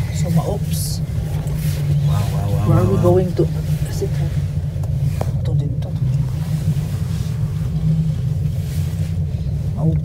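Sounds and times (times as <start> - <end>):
gondola cabin low rumble: 0.0 - 10.0.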